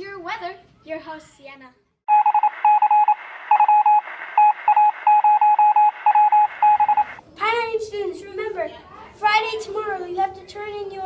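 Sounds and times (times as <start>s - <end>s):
morse code beeping: 2.1s - 7.2s.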